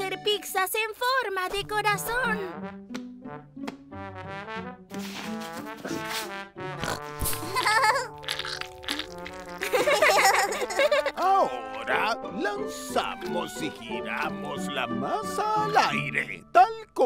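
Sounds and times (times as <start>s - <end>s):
light cartoon music: 0.0s - 17.0s.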